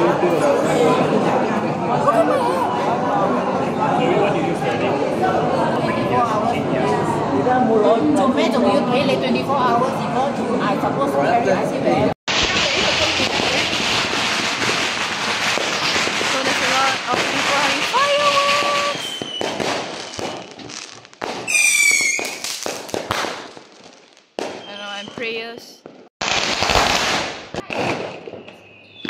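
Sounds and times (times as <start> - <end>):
firecrackers crackling and popping: 12.3 - 29.0.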